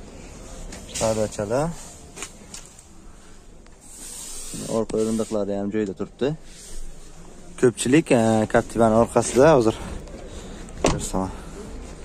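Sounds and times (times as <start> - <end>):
faint background noise: 0.0 - 12.0
hiss: 3.9 - 5.4.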